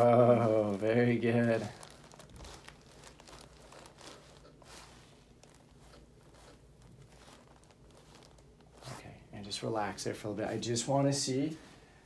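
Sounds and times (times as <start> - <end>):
paper and clothing rustling: 0.0 - 12.0.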